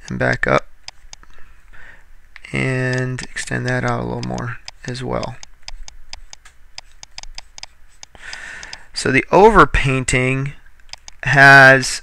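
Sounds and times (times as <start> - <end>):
faint rapid ticking: 2.4 - 9.1.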